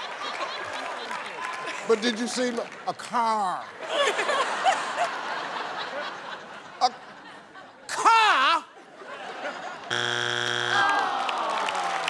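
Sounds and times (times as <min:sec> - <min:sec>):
audience clapping: 0:00.0 - 0:03.5, 0:10.7 - 0:12.0
long falling tone: 0:09.9 - 0:11.1
game show buzzer: 0:09.9 - 0:11.2.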